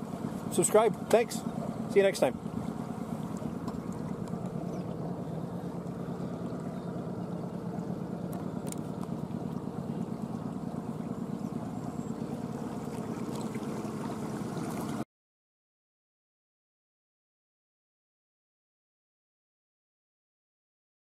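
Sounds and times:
outboard motor humming: 0.0s - 15.0s.

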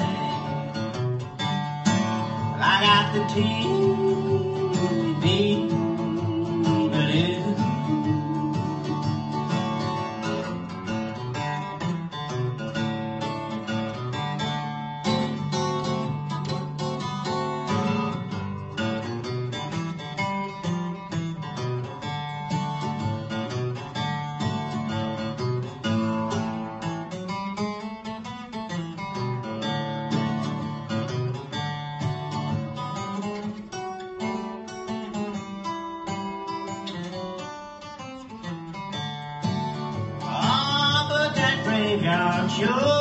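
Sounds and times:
acoustic guitar picking: 0.0s - 43.0s.

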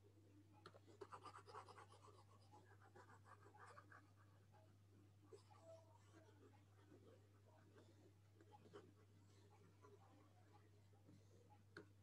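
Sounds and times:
low electrical hum: 0.0s - 12.0s
stylus scratching and tapping screen: 0.7s - 4.2s.

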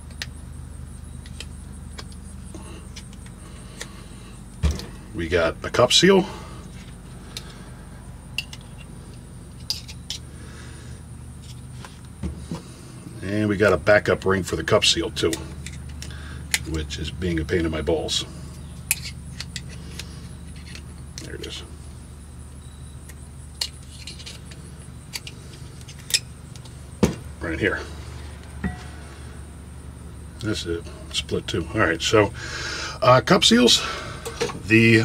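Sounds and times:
steady low hum: 0.0s - 35.0s
metal pick clicking and scraping: 9.6s - 10.2s, 18.9s - 21.3s, 23.1s - 26.8s.

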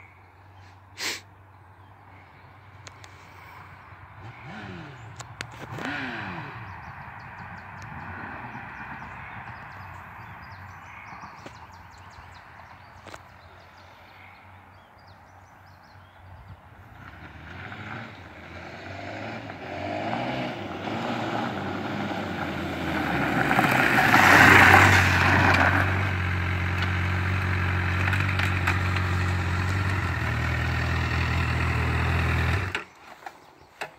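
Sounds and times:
motorcycle engine: 2.6s - 13.6s, 16.6s - 33.9s.

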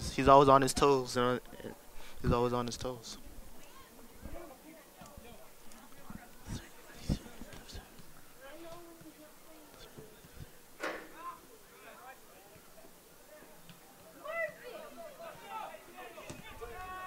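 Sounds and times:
distant players shouting: 13.5s - 17.0s.

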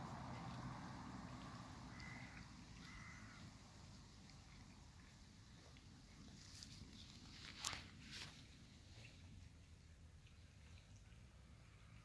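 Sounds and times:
faint short animal calls: 1.9s - 3.4s.

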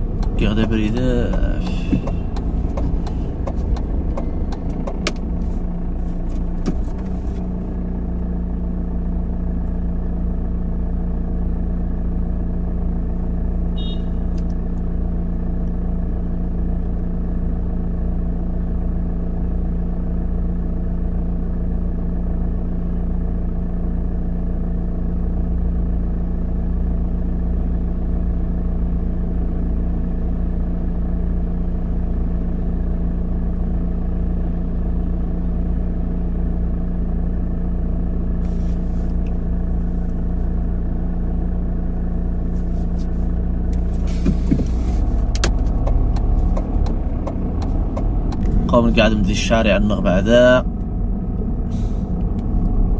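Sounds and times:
car engine idling: 0.0s - 52.9s.

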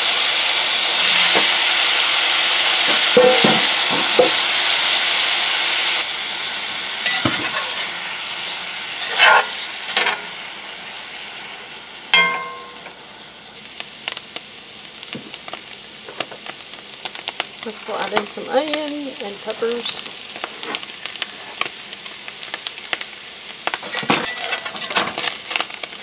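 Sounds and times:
potatoes sizzling in skillet: 0.0s - 26.0s
spatula scraping skillet: 7.0s - 8.0s, 9.0s - 10.4s, 23.8s - 25.6s
ringing metal clink: 12.2s - 13.0s.

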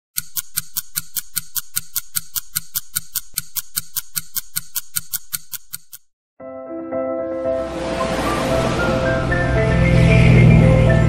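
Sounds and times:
film projector ticking: 0.1s - 6.1s.

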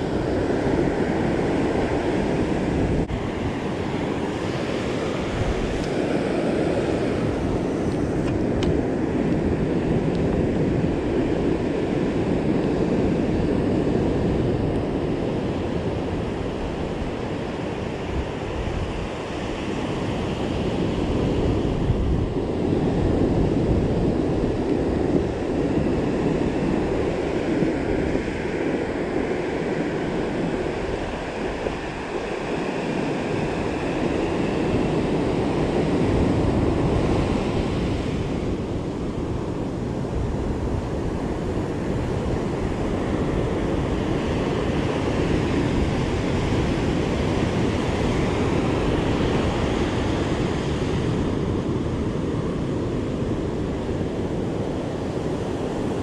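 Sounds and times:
ocean surf on beach: 0.0s - 56.0s.

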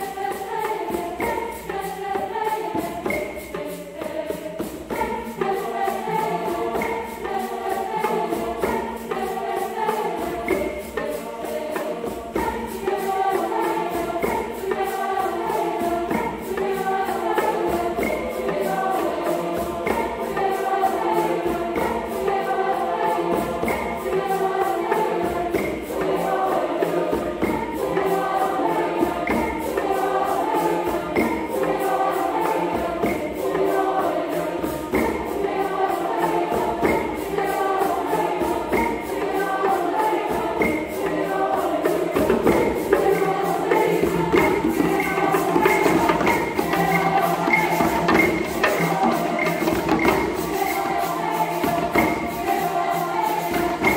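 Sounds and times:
hand drums beating: 0.0s - 53.9s
mixed choir singing: 0.0s - 53.9s.

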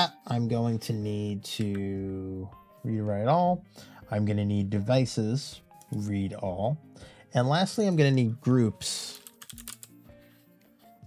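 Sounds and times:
computer keyboard typing: 9.1s - 10.0s.

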